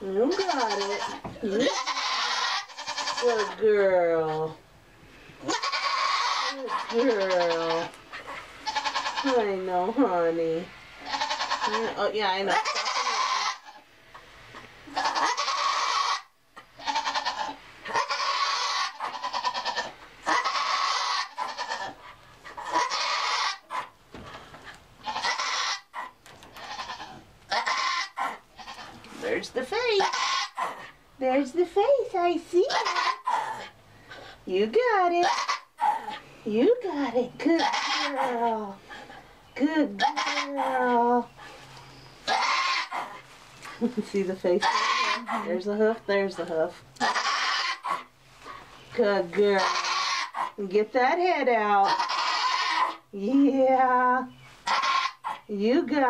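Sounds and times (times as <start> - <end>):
goat bleating in labour: 0.2 - 3.6, 5.4 - 7.9, 8.6 - 9.5, 11.0 - 13.8, 14.9 - 22.0, 22.7 - 23.7, 25.0 - 25.9, 26.5 - 29.0, 30.0 - 30.6, 32.7 - 33.3, 37.5 - 38.3, 39.8 - 40.9, 42.3 - 42.9, 44.6 - 45.5, 47.0 - 48.0, 49.5 - 50.4, 51.8 - 53.0, 54.7 - 55.4.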